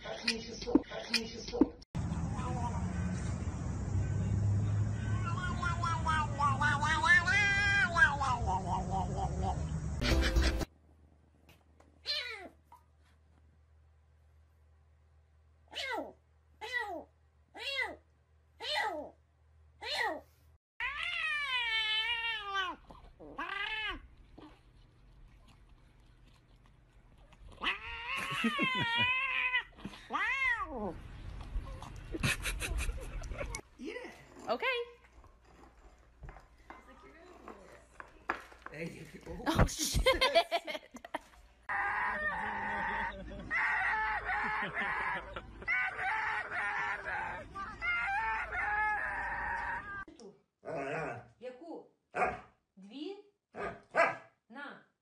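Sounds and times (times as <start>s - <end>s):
dogs howling: 41.7s - 50.1s.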